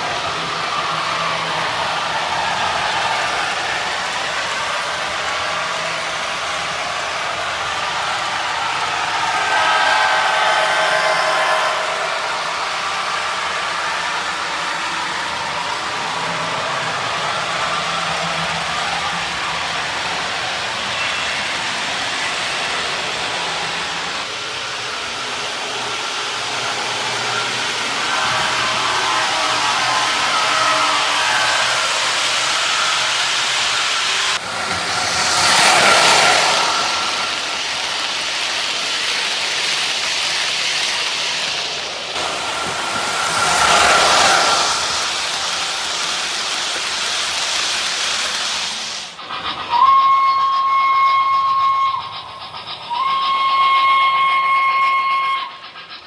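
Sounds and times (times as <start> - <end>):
model train wheels rumbling on rails: 0.0 - 56.0.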